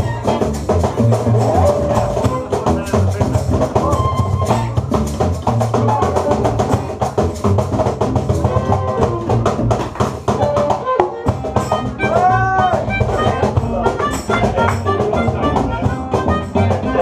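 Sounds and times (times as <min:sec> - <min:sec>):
melodica bending notes: 0:00.0 - 0:05.2, 0:10.6 - 0:17.0
acoustic band playing latin groove: 0:00.0 - 0:17.0.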